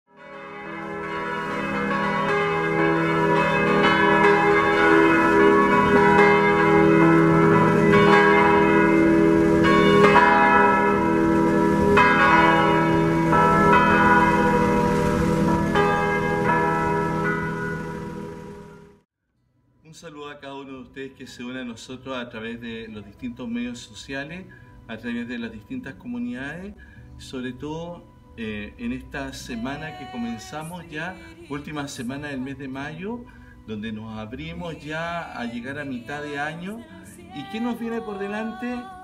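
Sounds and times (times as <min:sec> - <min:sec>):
church bells ringing: 0:00.1 - 0:19.0, 0:29.4 - 0:39.0.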